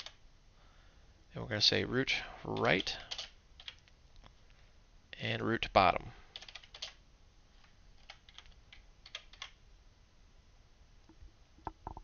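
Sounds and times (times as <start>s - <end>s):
computer keyboard typing: 0.0s - 0.2s, 2.5s - 3.9s, 6.3s - 7.0s, 8.0s - 9.6s.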